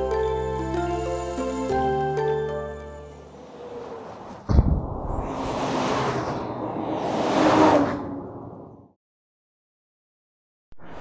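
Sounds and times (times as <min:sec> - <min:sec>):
heavy trucks passing: 0:00.0 - 0:04.6, 0:05.2 - 0:08.8
low thump: 0:04.5 - 0:05.3.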